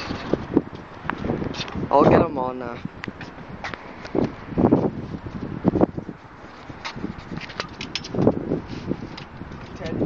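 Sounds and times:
wind rumble on microphone: 0.0 - 10.0
footsteps on concrete: 0.6 - 9.6.

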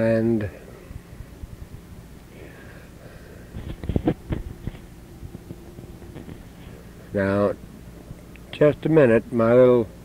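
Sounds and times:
tape hum: 3.5 - 8.5.

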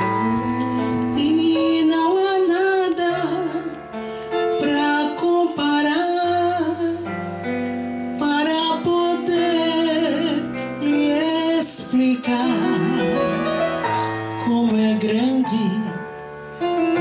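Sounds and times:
woman singing into microphone: 0.0 - 7.4, 8.1 - 13.6, 14.4 - 16.2
instrumental accompaniment: 0.0 - 17.0.

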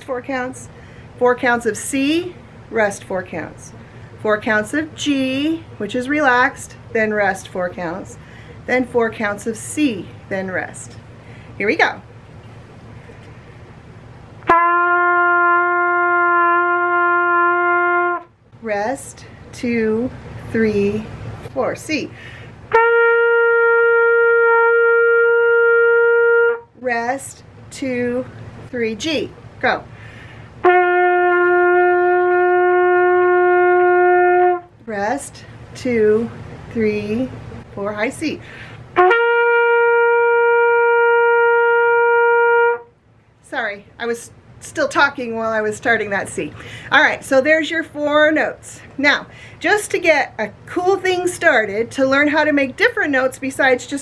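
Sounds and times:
trumpet holding a note: 14.5 - 18.3, 22.7 - 26.7, 30.6 - 34.7, 39.0 - 42.9.

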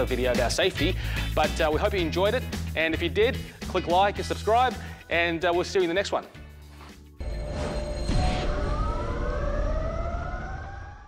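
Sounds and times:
deep rumble: 7.2 - 11.0
slowly rising tones: 7.2 - 11.0.

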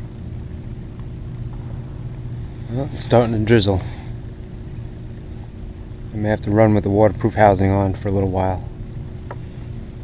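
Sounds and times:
faint steady hum: 0.0 - 10.0
low rumble: 0.7 - 6.1.

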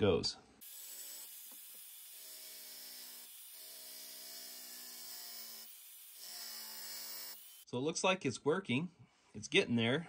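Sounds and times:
belt sander grinding metal: 0.6 - 7.7.

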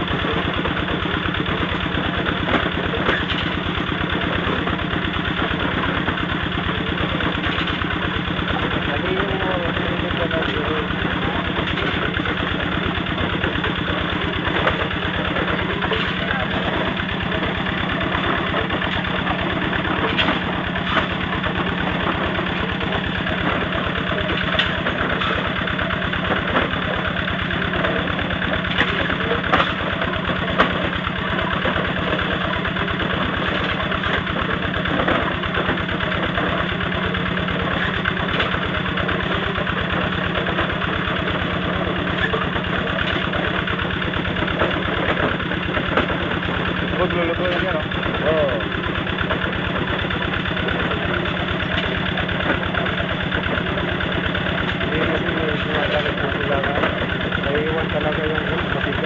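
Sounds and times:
engine running steadily: 0.0 - 59.0.

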